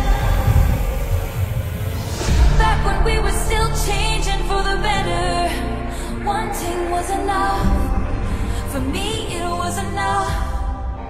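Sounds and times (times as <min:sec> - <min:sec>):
deep pulsing bass rumble: 0:00.0 - 0:11.0
held synth chords: 0:00.0 - 0:11.0.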